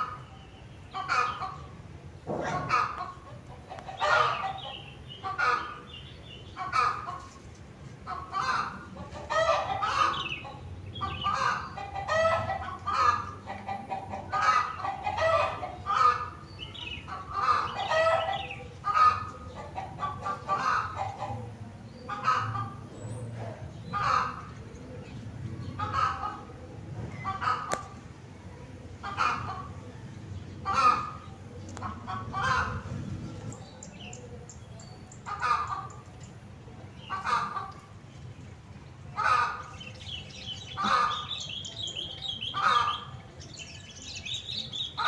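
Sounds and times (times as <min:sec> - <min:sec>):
chickens clucking: 0:00.0 - 0:45.0.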